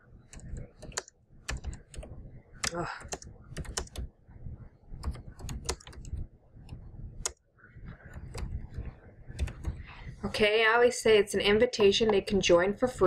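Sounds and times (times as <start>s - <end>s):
computer keyboard typing: 0.3s - 4.1s, 5.0s - 10.0s.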